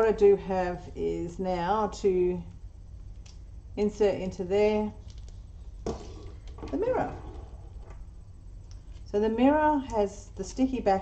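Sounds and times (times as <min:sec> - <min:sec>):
low steady hum: 0:00.0 - 0:11.0
faint clicks of resin pieces: 0:03.1 - 0:03.4, 0:05.0 - 0:05.4.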